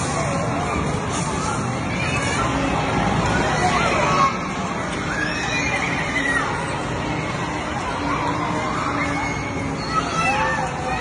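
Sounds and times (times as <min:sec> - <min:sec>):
children squealing: 0:05.0 - 0:06.7.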